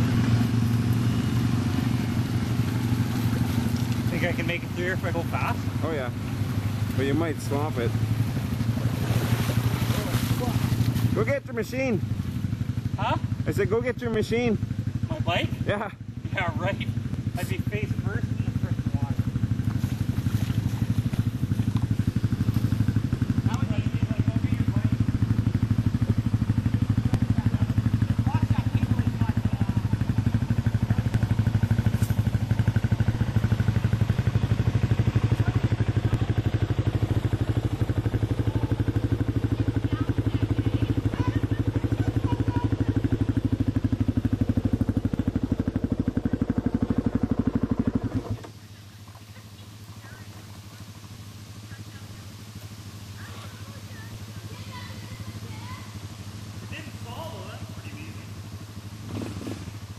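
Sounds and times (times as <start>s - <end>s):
atv engine running at low revs: 0.0s - 59.9s.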